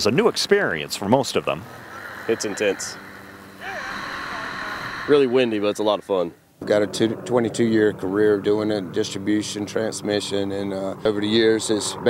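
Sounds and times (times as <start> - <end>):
helicopter noise: 0.0 - 12.0.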